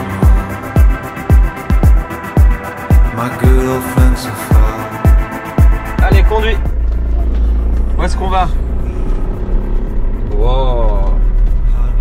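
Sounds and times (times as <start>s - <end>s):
van engine drone: 0.0s - 12.0s.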